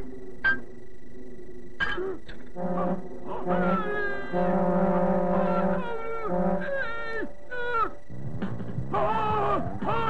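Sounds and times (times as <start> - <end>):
low buzzing horn-like tone: 0.0 - 8.5
higher held tones: 1.8 - 10.0
sliding voice-like notes: 2.7 - 8.0.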